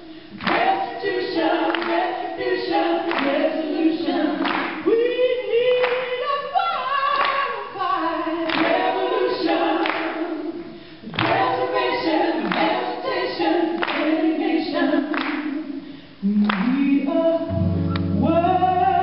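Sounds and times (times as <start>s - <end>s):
woman and man singing a cappella: 0.0s - 19.0s
handclaps: 0.4s - 0.8s, 1.7s - 2.1s, 3.1s - 3.4s, 4.4s - 4.8s, 5.8s - 6.1s, 7.2s - 7.4s, 8.5s - 8.8s, 9.8s - 10.1s, 11.2s - 11.5s, 13.8s - 14.1s, 15.1s - 15.5s, 16.4s - 16.8s.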